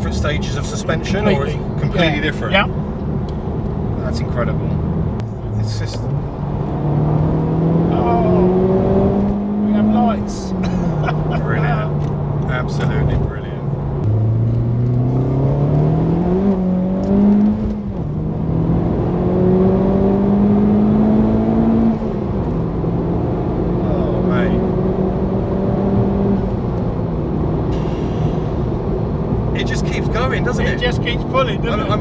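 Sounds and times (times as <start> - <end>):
car engine accelerating hard: 0.0 - 32.0.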